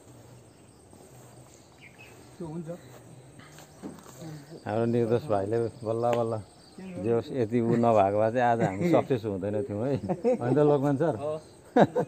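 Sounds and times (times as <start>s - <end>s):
man talking: 2.4s - 3.0s, 4.2s - 6.4s, 7.0s - 11.6s.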